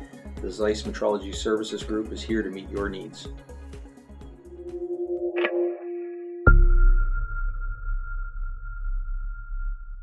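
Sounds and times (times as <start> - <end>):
high ringing tone: 4.2 - 10.0.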